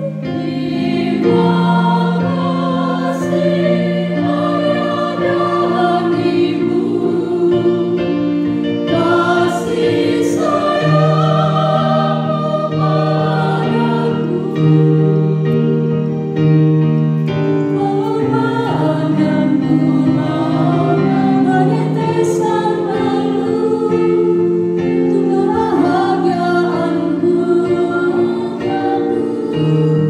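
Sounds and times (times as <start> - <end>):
choir singing a hymn: 0.0 - 16.4, 17.3 - 30.0.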